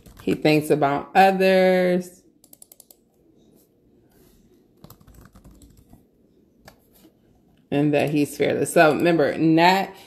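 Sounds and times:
typing on computer keyboard: 0.0 - 0.4, 2.4 - 3.0, 4.8 - 6.0.

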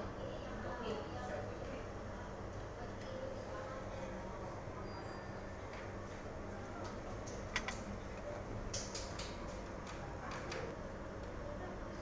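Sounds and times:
faint indistinct voices: 0.0 - 8.6.

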